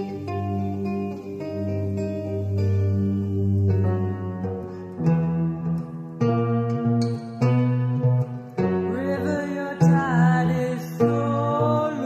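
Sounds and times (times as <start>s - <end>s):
acoustic guitar: 0.0s - 12.0s
bass guitar: 0.0s - 12.0s
woman singing: 8.8s - 12.0s.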